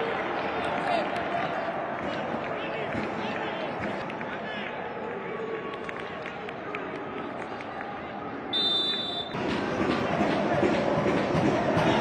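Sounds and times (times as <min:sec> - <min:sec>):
players' voices outdoors: 0:00.0 - 0:12.0
referee's whistle: 0:08.5 - 0:09.4.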